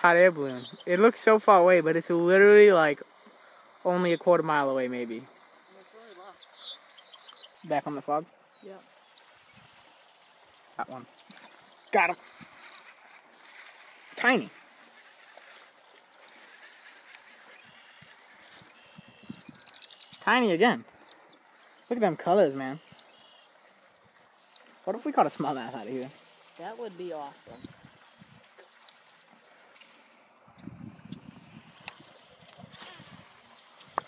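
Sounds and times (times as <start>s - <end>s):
rustling through tall grass: 0.0s - 21.9s, 22.8s - 34.0s
faint steady hiss: 0.0s - 34.0s
insect chirps: 0.0s - 34.0s.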